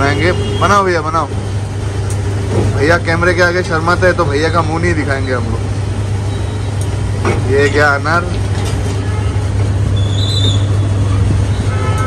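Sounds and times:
engine humming: 0.0s - 12.0s
street traffic noise: 0.0s - 12.0s.

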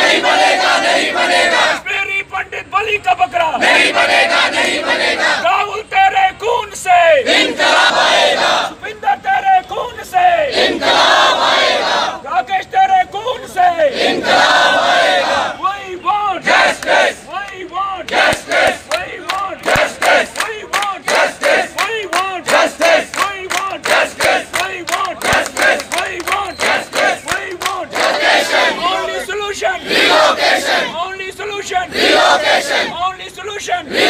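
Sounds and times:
crowd chanting slogans: 0.0s - 2.1s, 3.5s - 5.8s, 6.8s - 8.9s, 10.1s - 12.3s, 13.4s - 34.0s.

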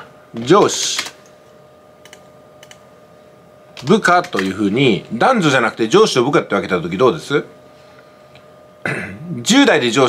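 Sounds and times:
computer keyboard keystrokes: 2.0s - 2.8s, 3.8s - 4.5s.

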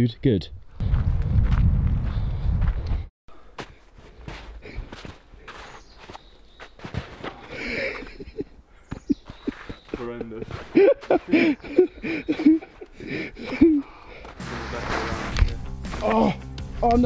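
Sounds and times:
footsteps crunching in snow: 3.6s - 7.6s, 9.1s - 11.8s.

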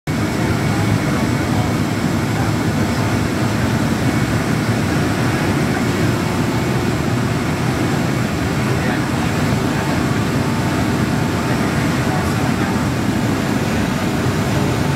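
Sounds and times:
aircraft engines and airflow rumble: 0.1s - 14.9s.

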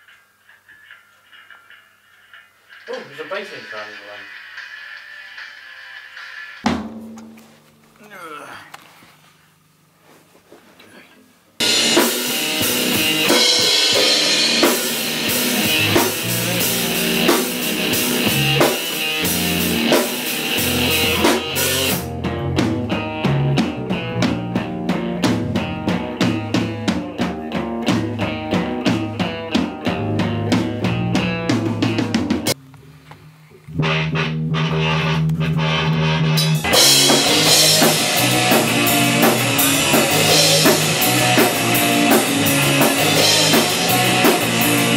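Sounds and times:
fast steady drum beat: 11.6s - 32.6s, 36.4s - 44.9s
rock band playing loud: 11.6s - 32.6s, 33.8s - 44.9s.

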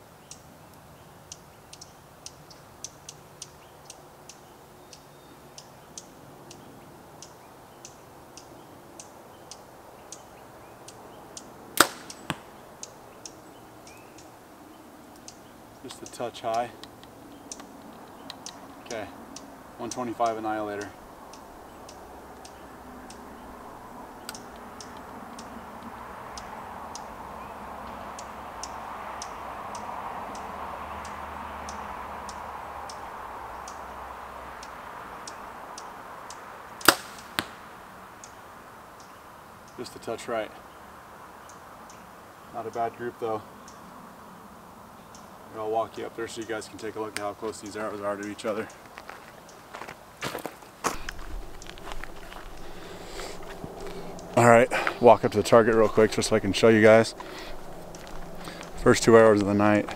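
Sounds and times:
arrow striking foam target: 11.8s - 12.5s, 36.9s - 37.6s
bow string crack: 11.8s - 12.6s, 36.8s - 37.7s
footsteps on dirt path: 47.4s - 59.9s.

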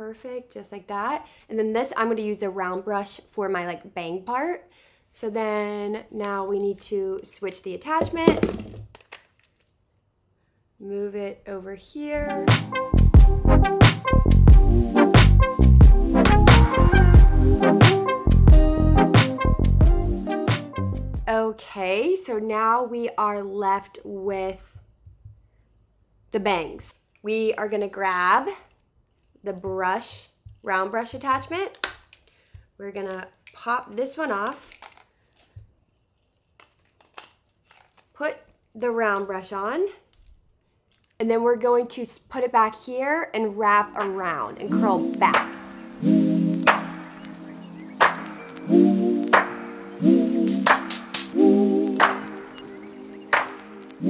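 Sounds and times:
person speaking: 7.8s - 8.9s, 10.8s - 12.5s, 41.2s - 45.9s.

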